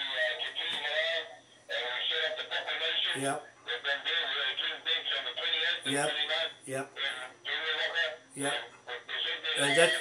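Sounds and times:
voice over phone speaker: 0.0 - 10.0.

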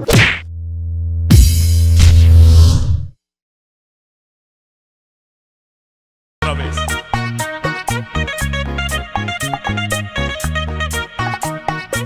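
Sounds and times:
sudden loud hit: 0.0 - 3.1.

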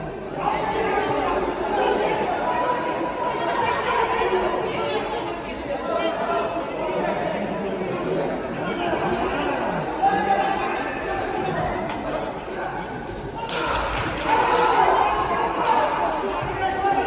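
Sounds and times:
chatter of voices: 0.0 - 17.0.

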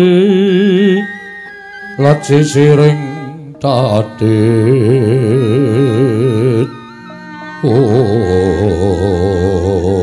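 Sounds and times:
man singing long vibrato vowel: 0.0 - 10.0
quiet accompaniment: 0.0 - 10.0.

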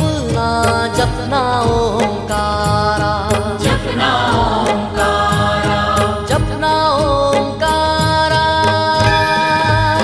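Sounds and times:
instrumental backing: 0.0 - 10.0
steady percussion beat: 8.7 - 10.0.

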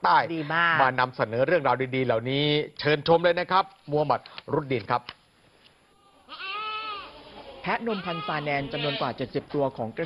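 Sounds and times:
goat bleating: 6.3 - 9.2.

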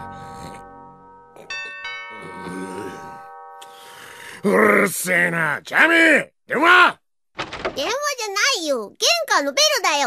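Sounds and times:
ding-dong doorbell chime: 0.0 - 4.4.

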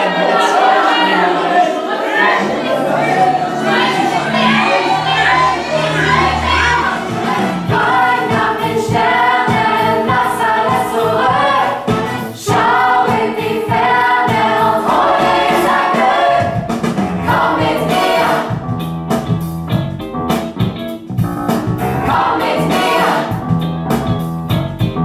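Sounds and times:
choir singing: 0.0 - 18.6, 21.8 - 23.4.

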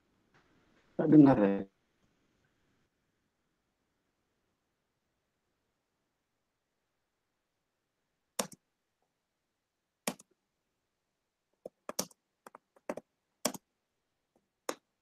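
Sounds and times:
computer keys clicking: 8.4 - 8.6, 10.1 - 10.3, 11.6 - 13.7.

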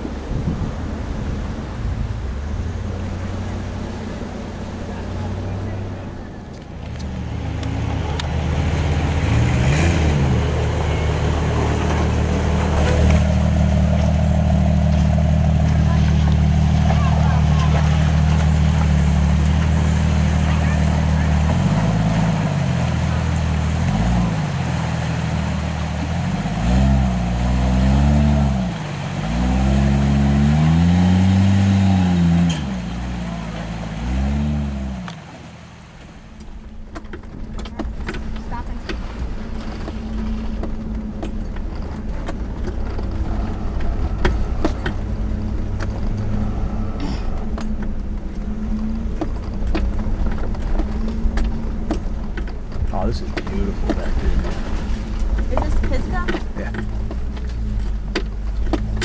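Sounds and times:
off-road engine revving: 0.0 - 59.0.

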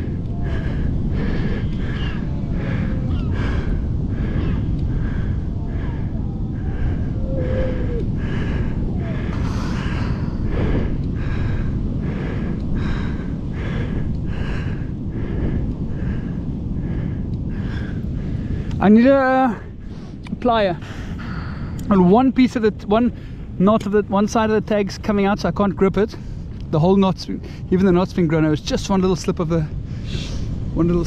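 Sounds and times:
rapid breathing: 0.0 - 18.8, 19.5 - 21.9, 29.7 - 30.7
low rumble of wind: 0.0 - 31.0.

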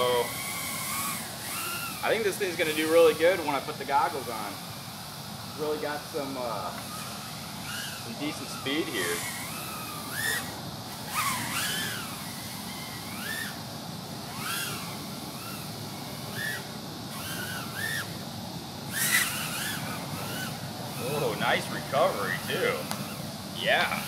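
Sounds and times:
quadcopter motors whining: 0.0 - 24.0.

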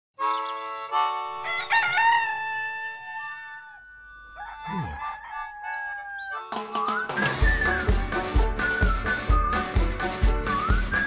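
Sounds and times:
cartoon rooster crowing: 1.4 - 6.6
light background music: 5.0 - 11.0.

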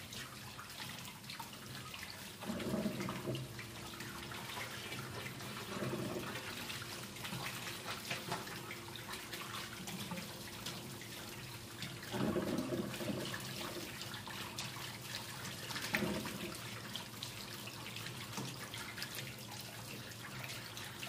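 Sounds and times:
water running from shower hose: 0.0 - 21.0.

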